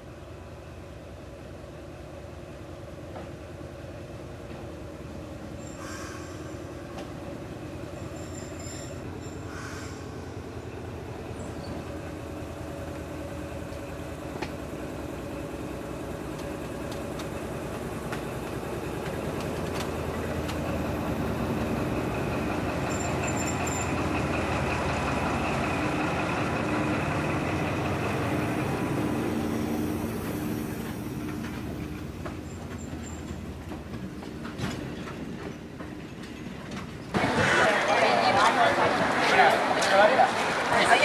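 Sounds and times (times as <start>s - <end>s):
diesel locomotive engine hum: 0.0s - 41.0s
train wheels clicking on track: 4.3s - 41.0s.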